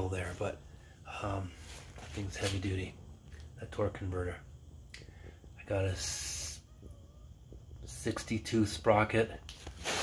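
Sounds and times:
short hiss: 0:09.6 - 0:10.0.

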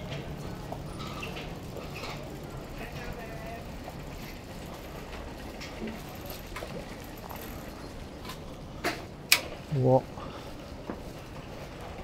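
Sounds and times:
faint chatter of passers-by: 0:00.0 - 0:12.0
footsteps on pavement: 0:10.3 - 0:12.0.

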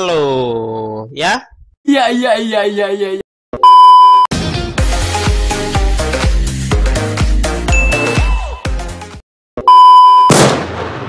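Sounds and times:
man's voice: 0:00.0 - 0:03.2
loud electronic beep: 0:07.7 - 0:08.7, 0:09.7 - 0:10.3
electronic music with steady beat: 0:07.7 - 0:08.8.

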